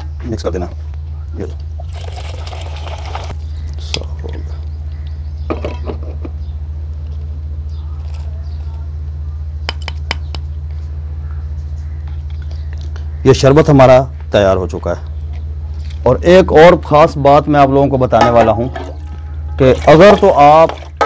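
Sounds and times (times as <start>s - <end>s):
steady low hum: 0.0s - 19.9s
liquid pouring through strainer: 1.8s - 3.3s.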